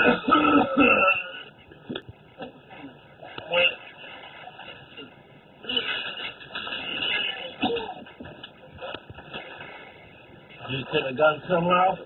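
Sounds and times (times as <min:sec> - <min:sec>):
faint rustling and shuffling: 0:01.6 - 0:12.0.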